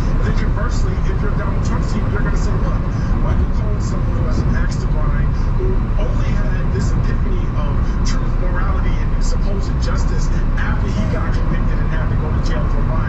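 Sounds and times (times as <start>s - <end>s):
news broadcast on car radio: 0.0s - 13.0s
road and engine rumble in car: 0.0s - 13.0s.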